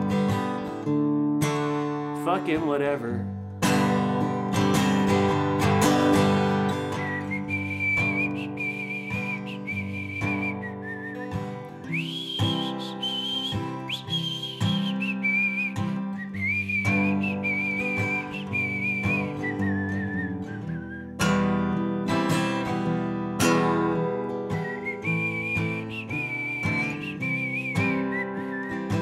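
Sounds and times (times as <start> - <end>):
strummed acoustic guitar: 0.0 - 29.0
high whistled melody: 6.8 - 21.4, 24.5 - 29.0.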